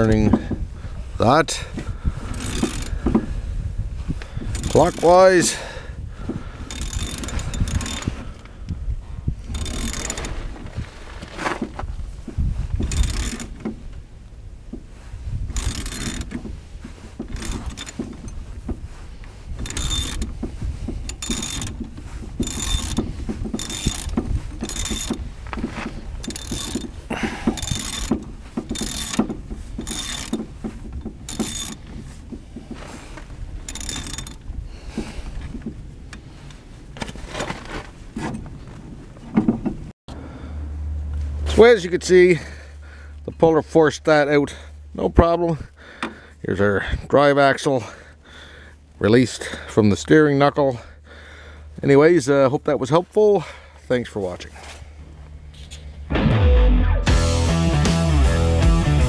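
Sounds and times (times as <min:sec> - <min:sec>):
ratchet wrench clicking: 0:02.3 - 0:03.1, 0:04.5 - 0:05.2, 0:06.6 - 0:08.2, 0:09.5 - 0:10.4, 0:12.8 - 0:13.7, 0:15.5 - 0:16.4, 0:17.2 - 0:18.4, 0:19.6 - 0:20.4, 0:21.0 - 0:25.3, 0:26.2 - 0:31.9, 0:33.6 - 0:34.4.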